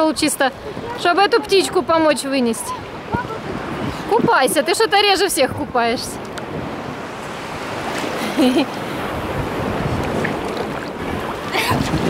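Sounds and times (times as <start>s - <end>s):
small waves lapping: 0.0s - 12.0s.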